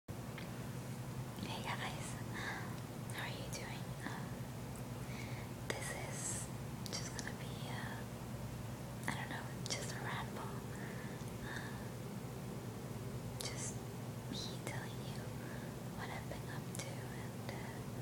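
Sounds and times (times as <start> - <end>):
low background hum: 0.1 - 18.0
woman whispering: 1.4 - 4.4, 5.7 - 8.1, 9.0 - 11.7, 13.4 - 15.4, 16.0 - 18.0.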